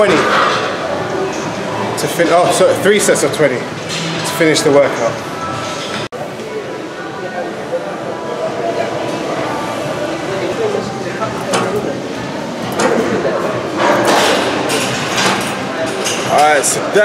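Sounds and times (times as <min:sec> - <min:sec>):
voices in a gym: 0:00.0 - 0:17.0.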